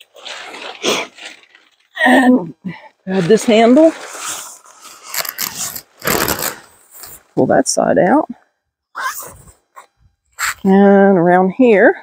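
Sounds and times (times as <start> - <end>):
tent fabric rustling: 0.0 - 2.0, 3.1 - 7.2.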